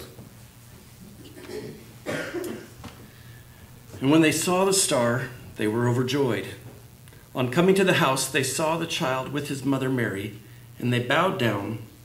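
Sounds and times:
person coughing: 1.2s - 2.8s.

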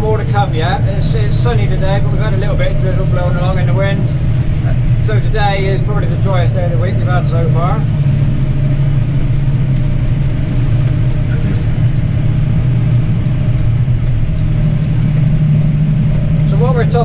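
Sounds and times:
tractor engine droning: 0.0s - 17.0s.

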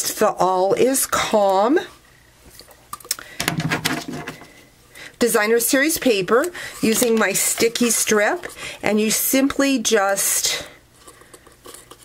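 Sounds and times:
tape and paper cup rustling: 6.0s - 8.6s, 10.1s - 12.0s.

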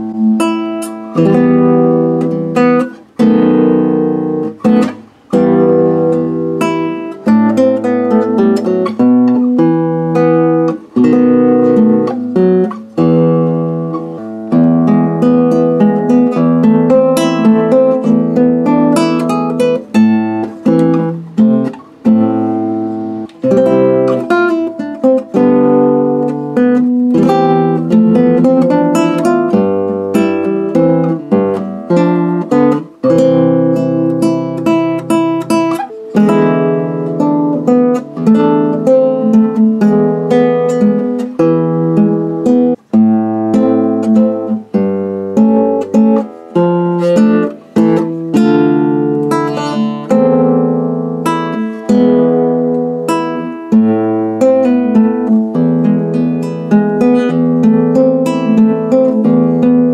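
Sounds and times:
classical guitar fingerstyle: 0.0s - 59.9s.

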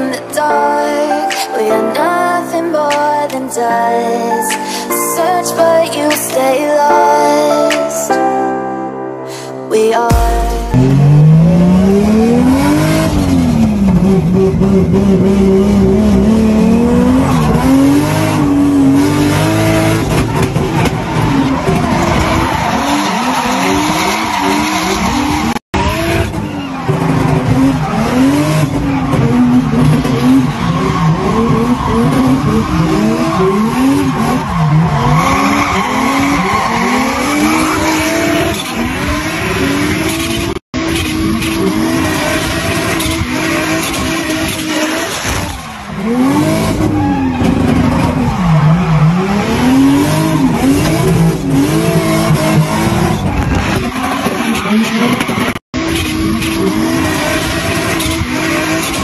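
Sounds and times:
race car engine revving: 10.1s - 59.0s.

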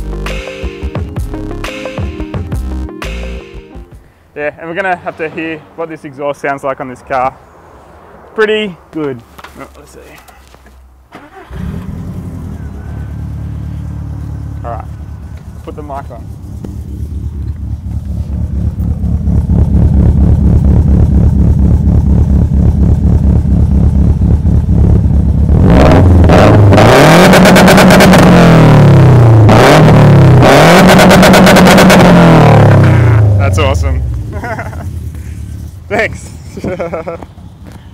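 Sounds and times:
car engine idling: 3.9s - 29.5s, 30.2s - 37.9s
car engine revving: 11.2s - 37.6s.

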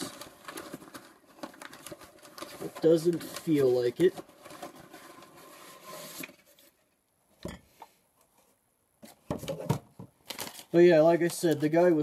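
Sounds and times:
cardboard and paper rustling: 0.0s - 6.8s, 9.0s - 12.0s.

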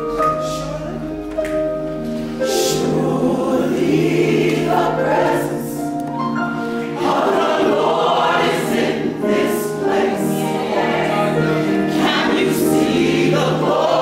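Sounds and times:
gospel choir singing: 0.0s - 14.0s.

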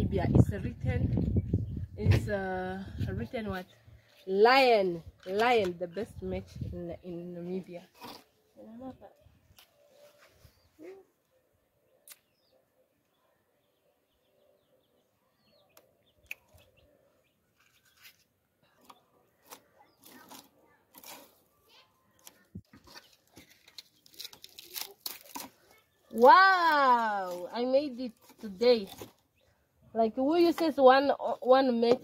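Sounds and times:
dry leaves rustling: 23.2s - 29.1s.

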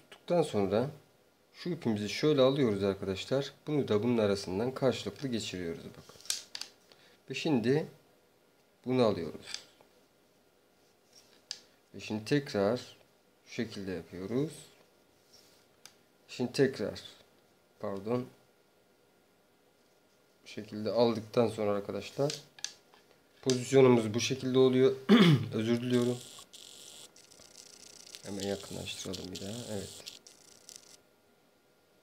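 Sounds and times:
faint hiss with high whine: 0.0s - 32.0s
faint rustling of cord: 9.8s - 12.0s, 14.6s - 15.8s, 19.7s - 20.5s
person speaking: 23.4s - 26.5s, 27.8s - 30.9s.

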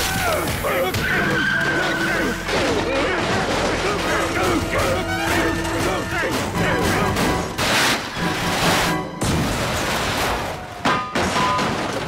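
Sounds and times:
crumbling debris: 0.0s - 12.0s.

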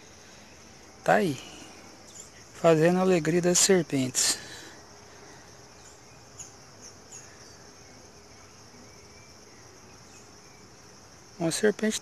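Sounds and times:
high-pitched insect trill: 0.0s - 12.0s.

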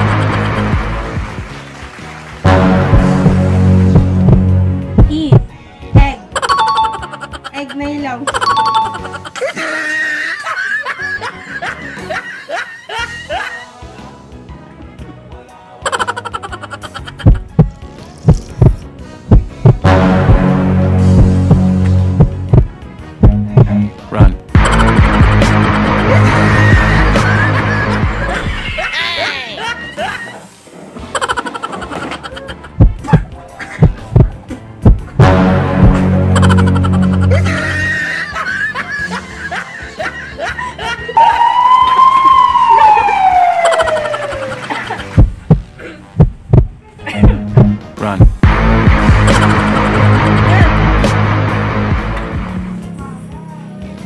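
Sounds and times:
heartbeat thumps: 2.8s - 6.2s, 17.2s - 25.5s, 32.7s - 36.6s, 45.2s - 50.8s
laughter: 6.3s - 13.8s, 15.8s - 17.5s, 24.6s - 25.3s, 26.5s - 34.1s, 36.3s - 41.4s, 43.0s - 45.2s, 47.0s - 47.5s, 49.3s - 50.5s
music with low sustained tones: 18.4s - 24.0s, 35.2s - 39.4s.

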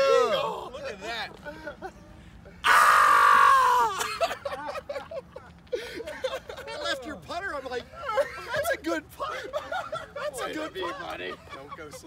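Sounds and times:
man yelling: 0.0s - 0.9s.

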